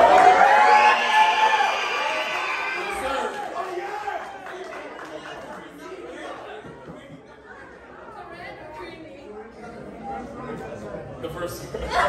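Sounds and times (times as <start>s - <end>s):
low chatter of voices: 5.0s - 12.0s.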